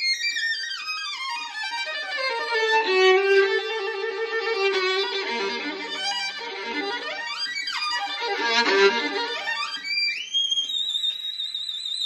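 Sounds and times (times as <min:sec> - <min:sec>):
violin high note with vibrato: 0:01.8 - 0:09.9.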